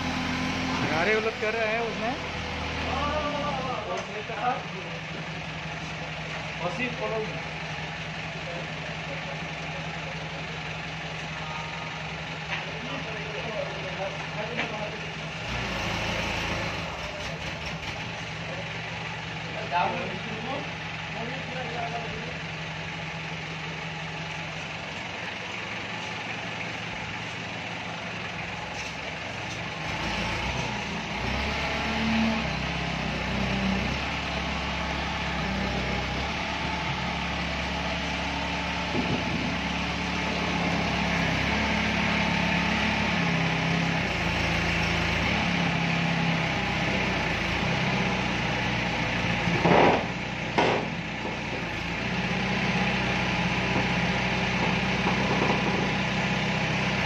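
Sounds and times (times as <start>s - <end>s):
forklift engine running: 0.0s - 57.0s.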